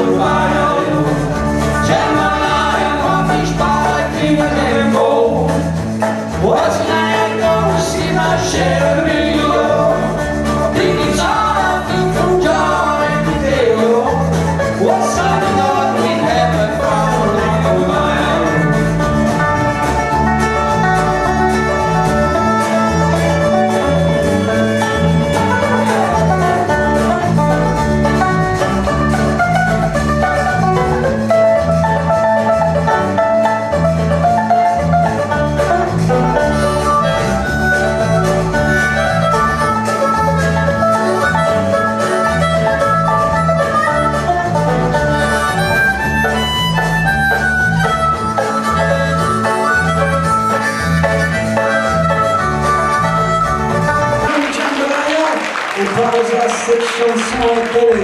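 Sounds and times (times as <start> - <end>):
harmonica lead: 0.0 - 54.4
banjo: 0.0 - 58.0
bass: 0.0 - 58.0
drums: 0.0 - 58.0
guitar: 0.0 - 58.0.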